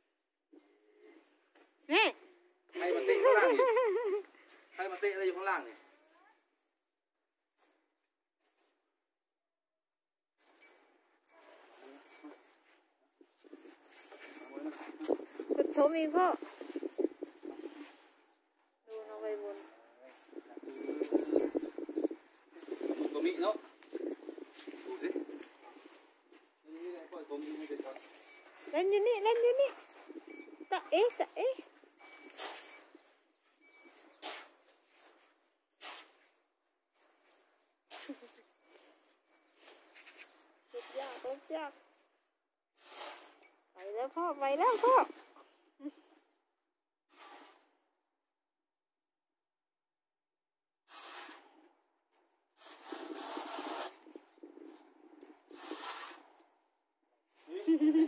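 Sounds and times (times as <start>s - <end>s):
rustling and scraping in dirt: 10.4s - 42.2s, 42.8s - 46.3s, 47.1s - 47.9s, 50.9s - 58.0s
shuffling on sandy dirt: 13.2s - 18.2s, 18.9s - 31.8s.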